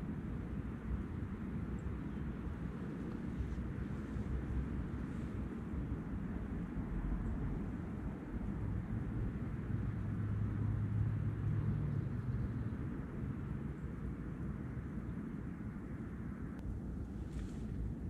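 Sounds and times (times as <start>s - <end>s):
wind rumbling on microphone: 0.0s - 18.0s.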